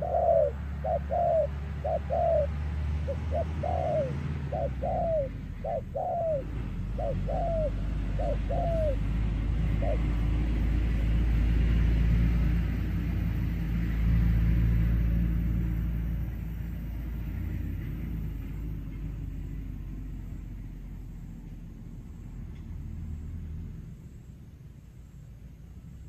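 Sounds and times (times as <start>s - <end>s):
vehicle engine rumble: 0.0s - 26.0s.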